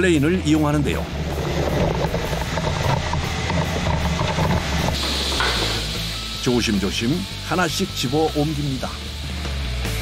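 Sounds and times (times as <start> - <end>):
diesel engine running: 0.8 - 7.5.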